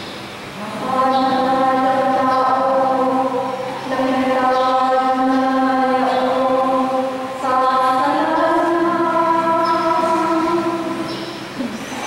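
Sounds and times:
woman chanting: 0.6 - 12.0.

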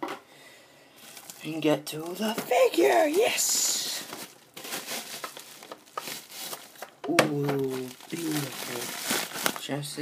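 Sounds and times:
paper packing crinkling: 1.0 - 10.0.

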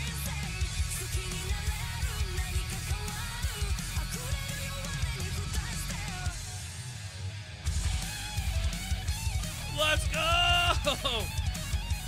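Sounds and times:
woman singing lead vocal: 0.0 - 6.4
hard rock song: 0.0 - 12.0.

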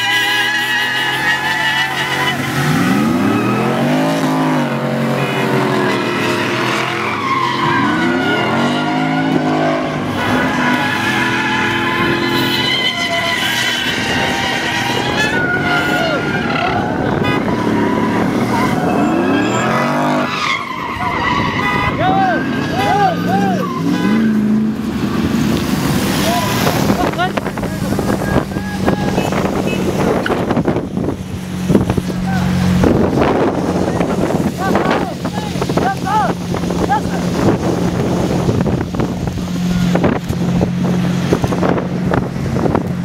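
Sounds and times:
tyres squealing: 0.0 - 30.7
car engines revving: 0.0 - 43.0
dense traffic noise: 0.0 - 43.0.

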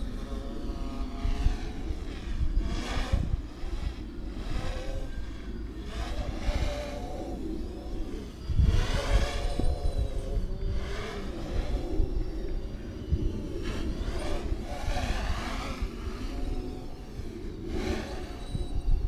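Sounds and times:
low rumble: 0.0 - 19.0
quadcopter motors whining: 0.0 - 19.0.

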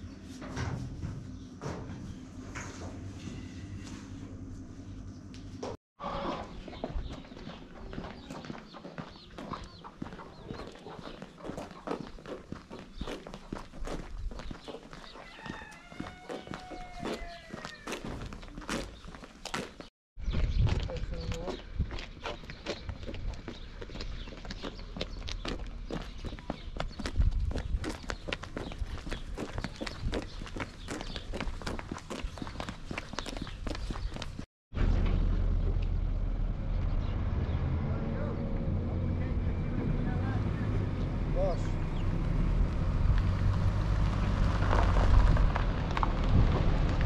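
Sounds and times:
footsteps crunching on gravel: 6.7 - 34.5.

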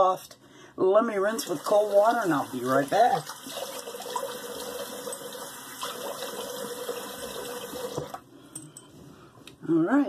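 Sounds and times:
tap water running into sink: 1.4 - 8.2.

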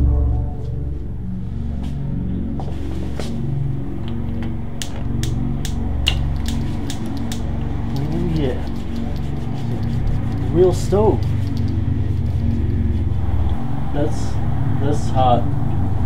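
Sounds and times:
background music with low notes: 0.0 - 16.0
sharp irregular clicks: 4.0 - 11.9.

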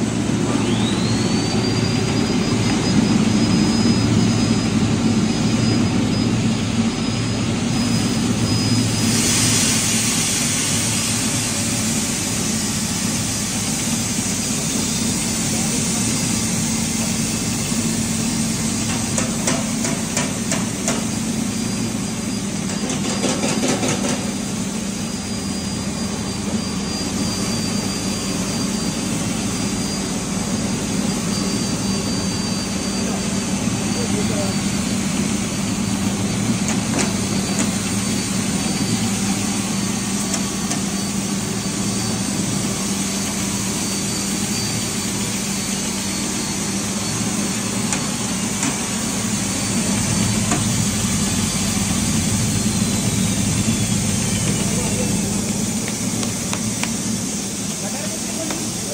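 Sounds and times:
motor hum: 0.0 - 9.0, 24.3 - 58.9.

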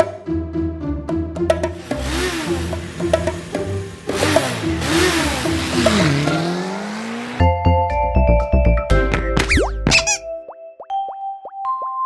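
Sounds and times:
cartoon motorbike engine revving: 1.6 - 7.5
children's music track: 7.4 - 12.0.

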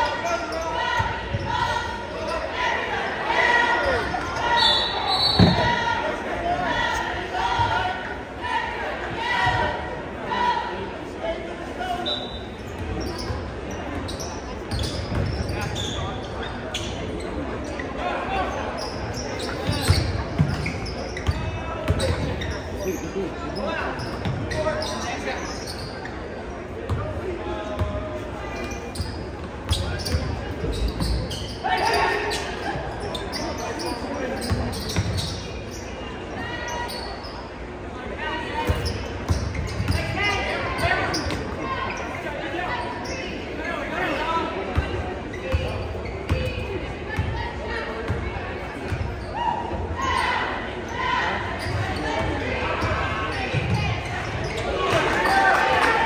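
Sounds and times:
chatter and calls of people: 0.0 - 56.0.

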